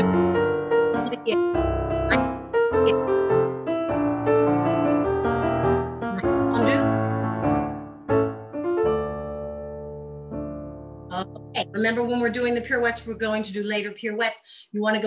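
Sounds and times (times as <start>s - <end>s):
piano playing: 0.0s - 13.5s.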